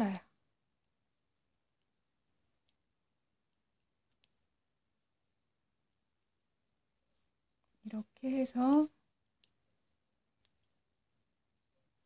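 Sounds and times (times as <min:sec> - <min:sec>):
knitting needles tapping: 0:01.6 - 0:04.6, 0:07.1 - 0:11.1.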